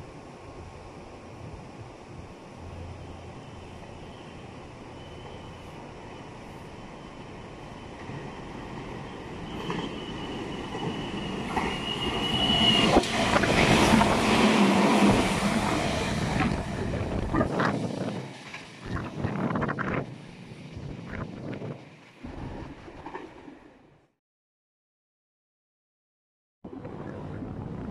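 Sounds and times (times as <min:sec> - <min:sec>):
electric train passing: 0:00.0 - 0:24.0.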